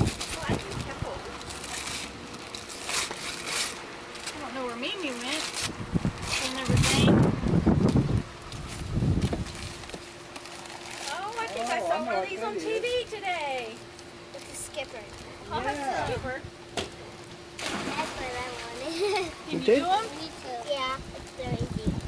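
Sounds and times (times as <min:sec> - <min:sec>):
wrapping paper tearing and crumpling: 0:00.0 - 0:07.0, 0:08.6 - 0:11.9.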